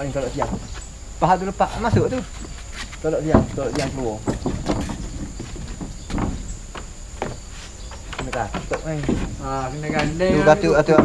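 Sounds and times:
high insect drone: 0:00.0 - 0:11.0
timber beams knocking: 0:00.0 - 0:11.0.

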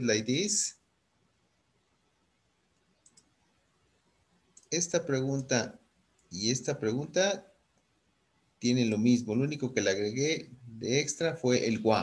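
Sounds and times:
faint quick clicks: 0:02.8 - 0:03.4.

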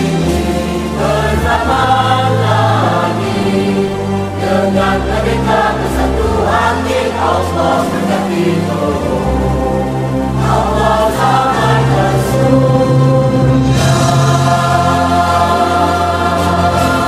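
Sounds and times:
choir singing an anthem: 0:00.0 - 0:17.0
instrumental accompaniment: 0:00.0 - 0:17.0.

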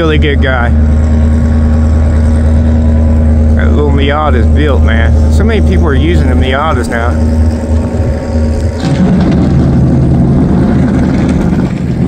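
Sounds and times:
car engine running: 0:00.0 - 0:12.0
constant low rumble: 0:00.0 - 0:12.0.

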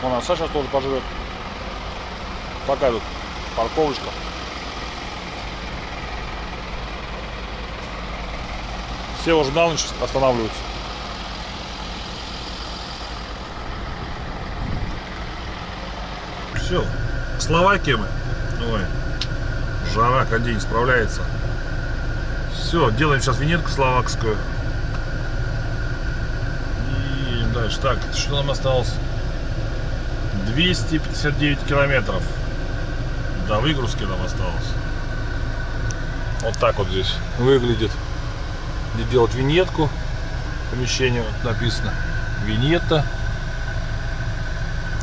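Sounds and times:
diesel truck engine idling: 0:00.0 - 0:45.0
faint steady whine: 0:00.0 - 0:45.0.

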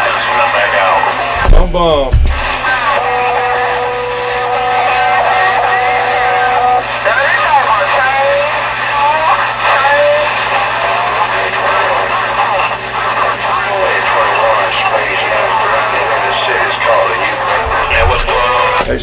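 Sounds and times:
radio whistle tones: 0:00.0 - 0:18.8
garbled distant radio voices: 0:00.0 - 0:19.0
radio static hiss: 0:00.0 - 0:19.0
low hum: 0:01.2 - 0:06.6.

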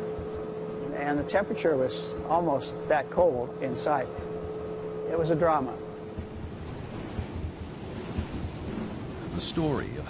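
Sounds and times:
uneven low rumble: 0:04.1 - 0:10.0
rushing sea noise: 0:05.6 - 0:10.0.

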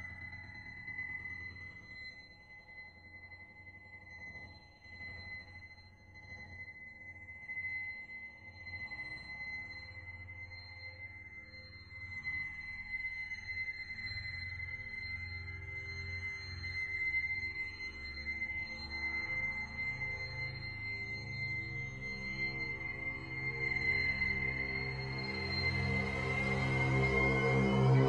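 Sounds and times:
low drone: 0:21.4 - 0:28.0
faint sweeping tones: 0:22.4 - 0:28.0.

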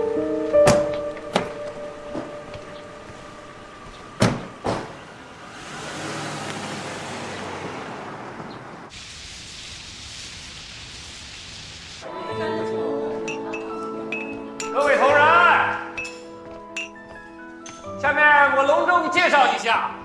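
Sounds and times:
car doors shutting: 0:00.4 - 0:07.2
car engine and tyre noise: 0:00.4 - 0:11.4.

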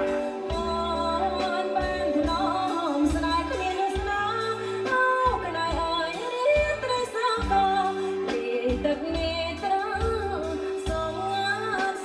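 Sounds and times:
woman singing over a band: 0:00.0 - 0:12.0.

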